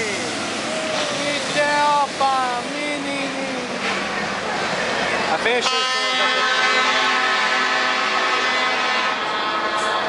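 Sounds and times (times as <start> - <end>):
heavy truck engine running: 0.0 - 10.0.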